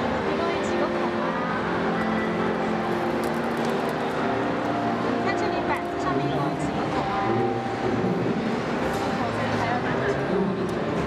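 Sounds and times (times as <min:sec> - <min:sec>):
hubbub of crowd in hall: 0:00.0 - 0:11.0.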